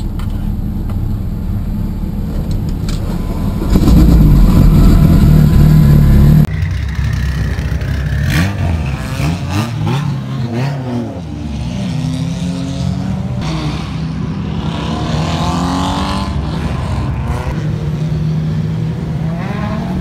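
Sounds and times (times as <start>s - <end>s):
race car engine revving: 3.2s - 6.5s.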